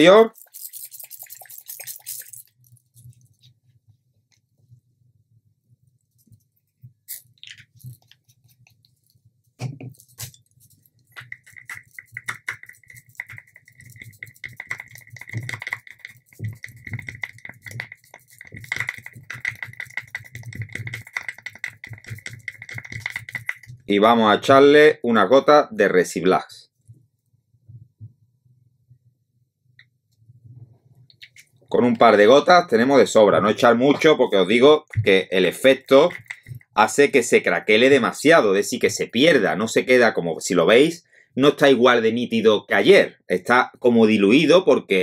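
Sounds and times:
stirring stick clicking on plastic cup: 11.0s - 23.9s, 35.9s - 36.8s.

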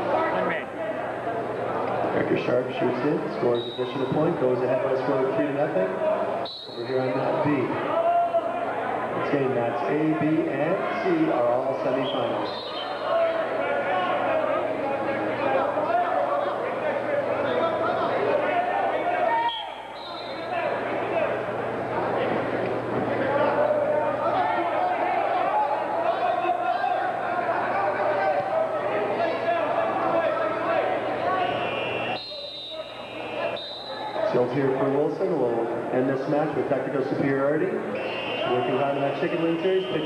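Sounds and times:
babble of shouting voices: 0.0s - 36.0s.

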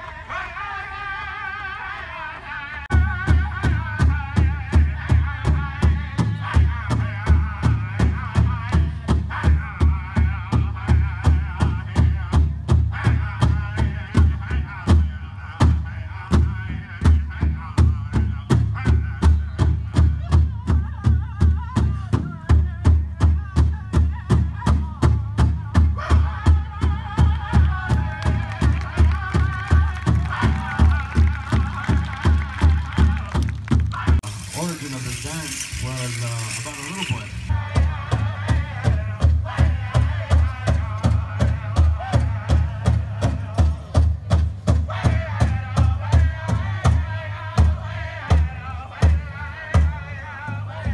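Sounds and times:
drum beaten steadily: 2.9s - 50.9s.

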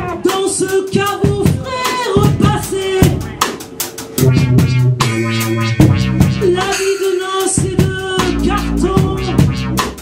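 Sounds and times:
drum kit: 0.0s - 10.0s
held guitar notes: 4.2s - 9.7s.

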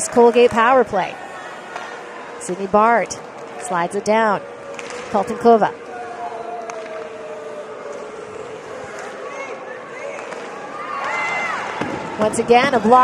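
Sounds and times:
arena crowd noise: 0.0s - 13.0s.

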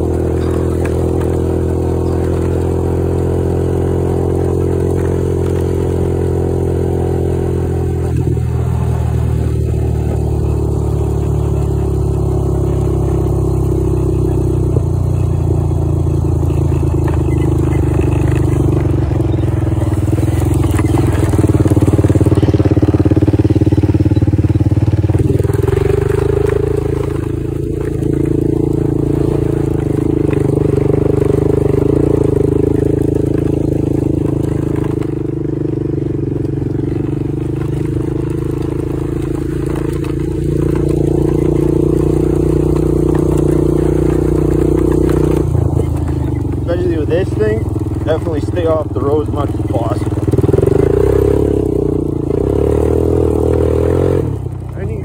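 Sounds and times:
quad bike engine running: 0.0s - 55.0s.

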